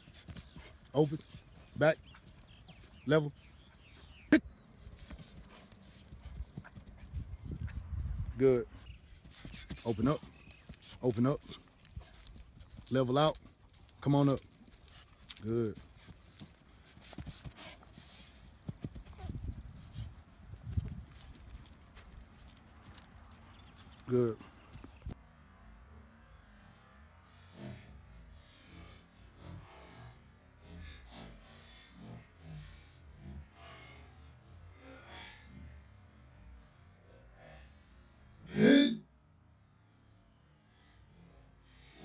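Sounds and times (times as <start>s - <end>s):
quick footsteps on artificial turf: 4.8s - 25.2s.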